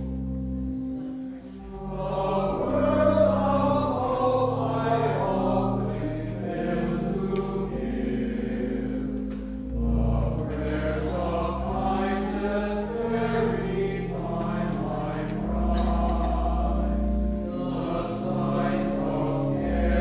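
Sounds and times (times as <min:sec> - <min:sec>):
choir and congregation singing hymn: 0:00.0 - 0:20.0
organ chords: 0:00.0 - 0:20.0.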